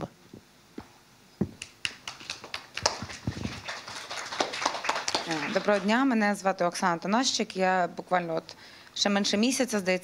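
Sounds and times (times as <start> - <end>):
microphone handling knocks and clicks: 0.8 - 1.6, 3.0 - 3.6.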